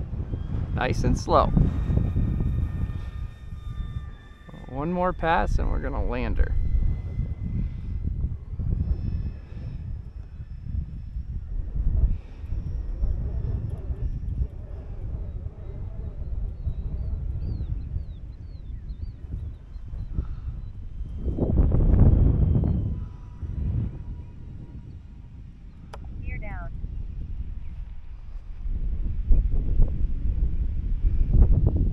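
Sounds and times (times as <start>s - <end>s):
model plane motors and propellers: 0.0s - 31.9s
wind buffeting microphone: 0.0s - 31.9s.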